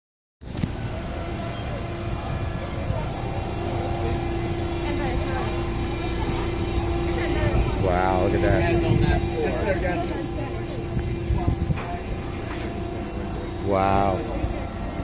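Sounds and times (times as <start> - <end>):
forklift engine running: 0.4 - 15.0
steady whine: 0.4 - 15.0
people talking in background: 0.7 - 15.0.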